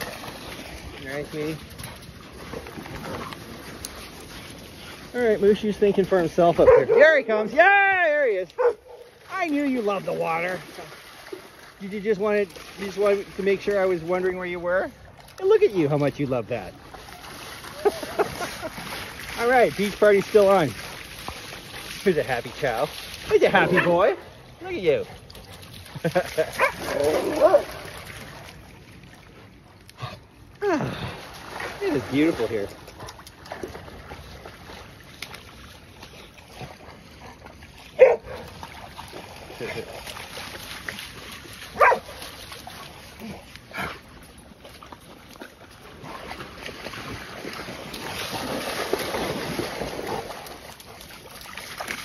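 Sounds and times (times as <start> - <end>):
dogs splashing through water: 0.0 - 52.0
dog barking and yipping: 6.6 - 7.1, 8.6 - 9.1, 26.6 - 27.7, 38.0 - 38.4, 41.8 - 42.2.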